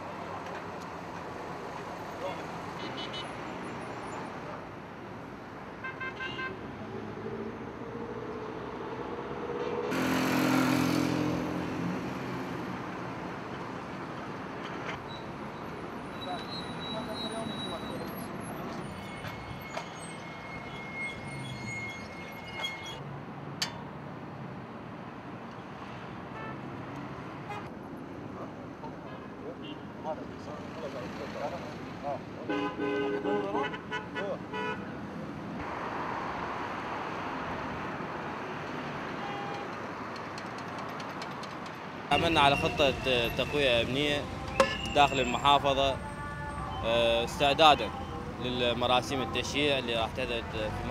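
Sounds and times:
vehicle traffic: 0.0s - 50.9s
car horns: 2.8s - 3.4s, 5.8s - 6.7s, 32.5s - 34.9s, 39.1s - 39.8s, 42.1s - 48.4s
voices: 42.1s - 50.9s.

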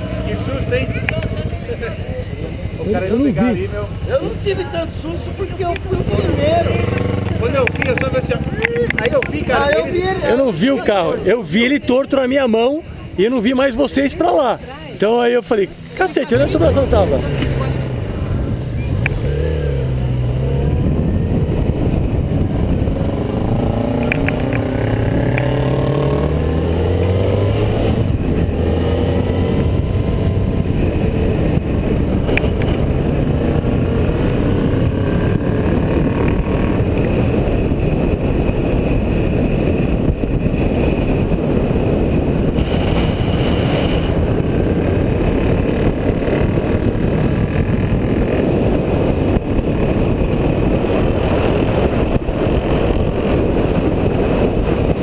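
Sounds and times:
motorcycle engine accelerating: 0.0s - 10.5s, 15.7s - 55.0s
wind and road noise: 0.0s - 55.0s.

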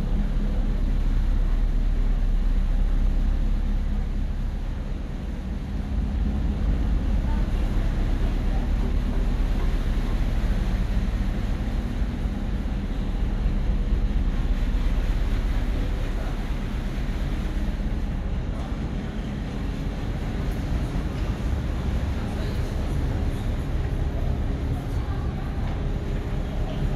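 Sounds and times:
ship engines droning: 0.0s - 26.9s.

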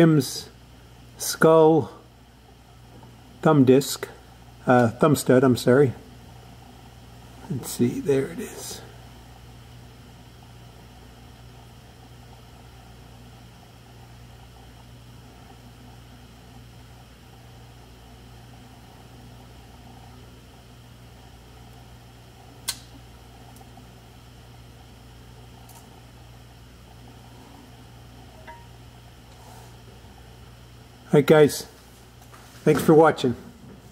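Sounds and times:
low room hum: 0.0s - 33.9s.

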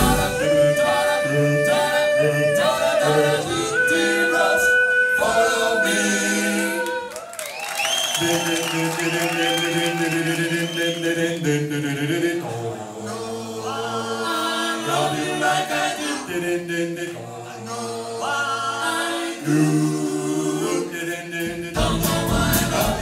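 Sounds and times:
high lead voice singing: 0.0s - 7.2s, 8.2s - 23.0s
vocal group singing a cappella: 0.0s - 7.3s, 7.9s - 23.0s.

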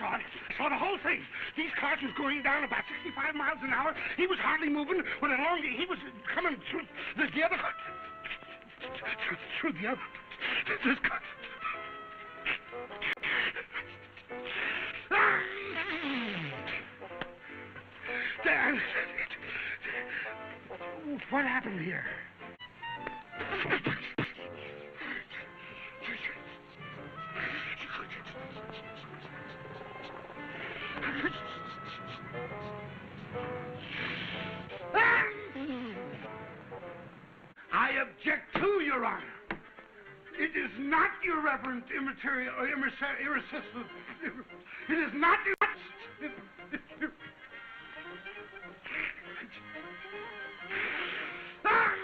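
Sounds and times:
film music: 0.0s - 52.0s.

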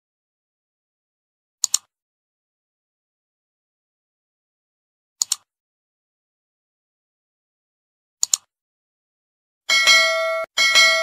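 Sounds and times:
bell dings: 9.7s - 11.0s.

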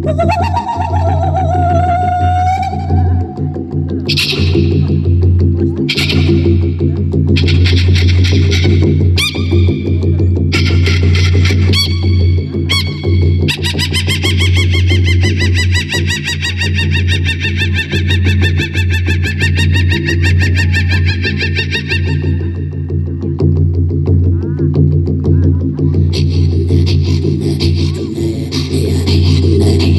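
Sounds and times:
woman throat singing: 0.0s - 4.8s.

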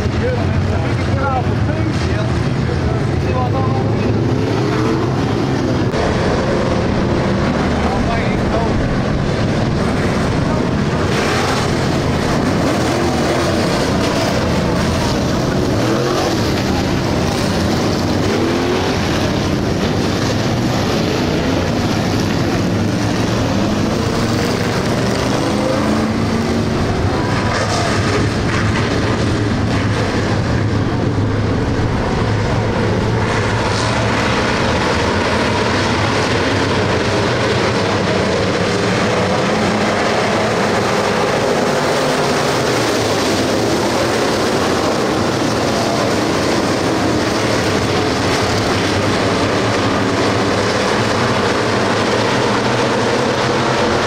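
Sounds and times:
racing car engines: 0.0s - 54.0s.

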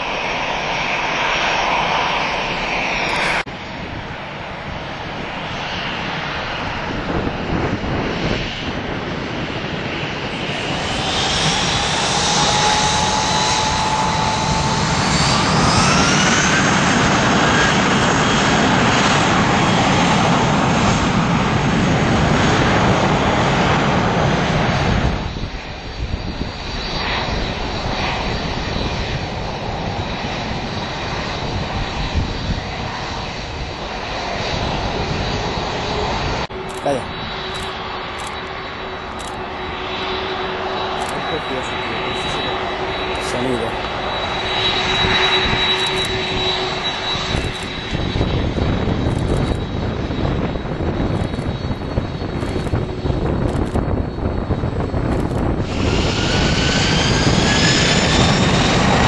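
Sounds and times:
distant jet rumble: 0.0s - 59.0s
jet engines roaring at takeoff: 0.0s - 59.0s
taxiing jet engine whine: 0.0s - 59.0s.

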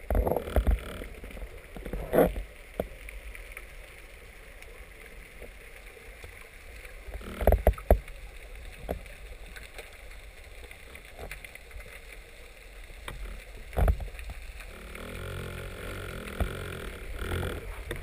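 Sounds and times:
dull underwater thumps: 14.8s - 18.0s.

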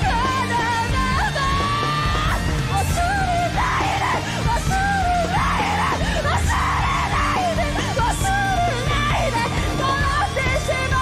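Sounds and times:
live rock band: 0.0s - 11.0s
woman singing in strained voice: 0.0s - 11.0s.

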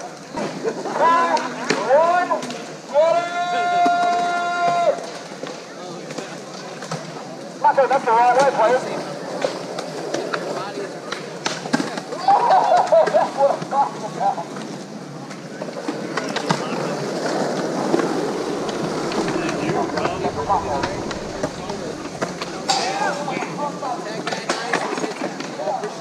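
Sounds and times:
skateboard wheels rolling on concrete: 15.8s - 23.3s.

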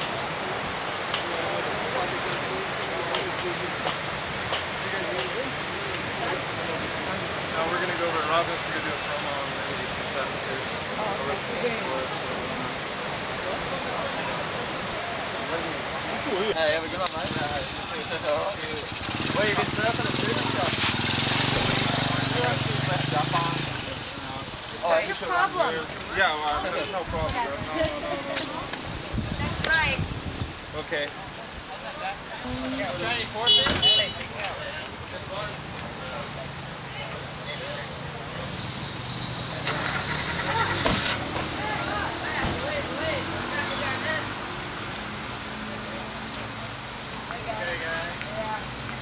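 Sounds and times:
voices: 0.0s - 49.0s
background voices: 31.1s - 33.4s.

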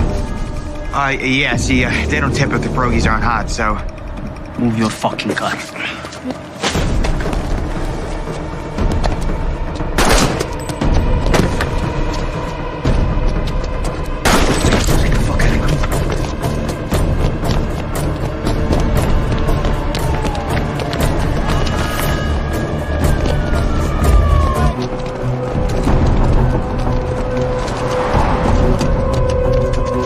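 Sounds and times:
dramatic soundtrack music: 0.0s - 30.0s.

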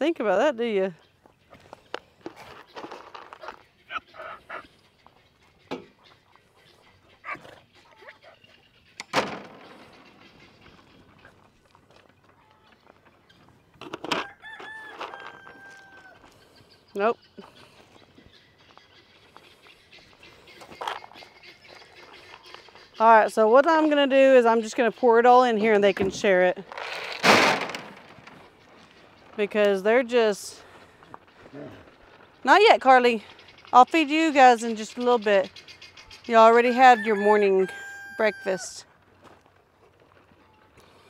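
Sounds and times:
faint rooster crowing: 14.2s - 16.3s, 36.7s - 38.7s.

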